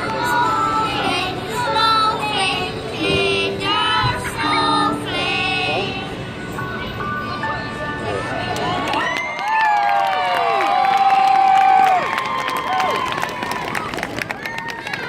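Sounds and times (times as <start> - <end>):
children's choir singing: 0.0 - 6.4
people clapping: 8.5 - 15.0
crowd cheering and whooping: 8.8 - 15.0.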